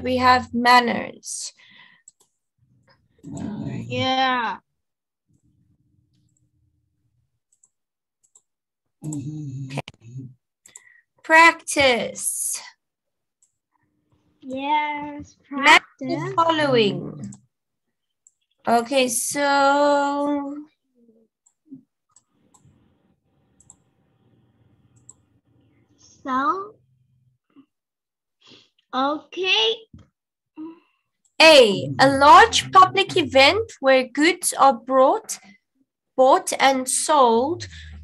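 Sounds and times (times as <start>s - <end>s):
computer mouse clicks: 2.0s - 2.4s, 7.5s - 8.5s, 10.6s - 10.9s, 23.6s - 23.8s, 25.0s - 25.2s
low hum: 31.5s - 33.7s.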